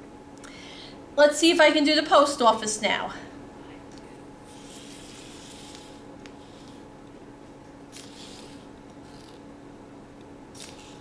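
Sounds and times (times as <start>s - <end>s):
faint steady hum: 0.0s - 11.0s
robot ball scraping on paper: 4.5s - 6.8s, 8.0s - 9.4s.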